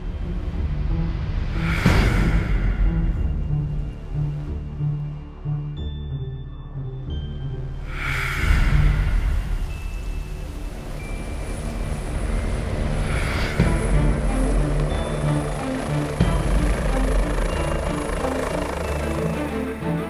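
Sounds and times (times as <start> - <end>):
helicopter rotor and turbines: 0.0 - 6.0, 7.4 - 20.0
background music with steady beat: 0.0 - 20.0.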